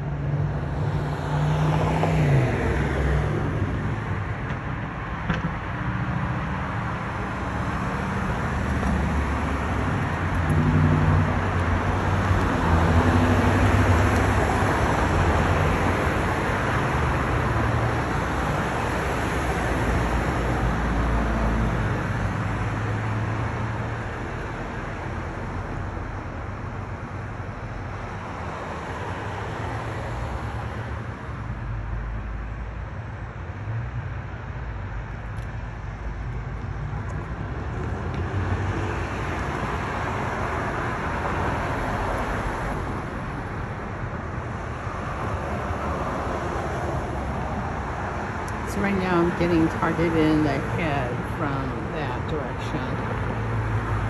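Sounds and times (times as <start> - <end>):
cars going by on street: 0.0 - 54.0.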